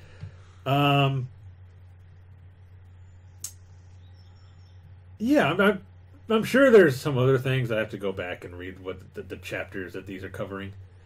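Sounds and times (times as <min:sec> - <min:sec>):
steady low hum: 0:00.0 - 0:11.0
sharp click: 0:03.4 - 0:03.6.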